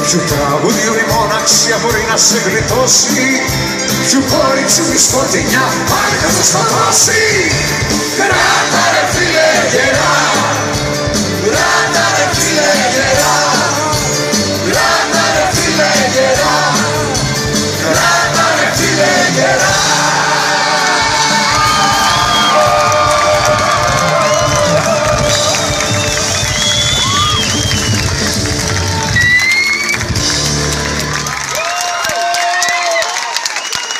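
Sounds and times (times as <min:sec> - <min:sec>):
live rock band playing: 0:00.0 - 0:31.6
crowd cheering and whooping: 0:20.0 - 0:33.9.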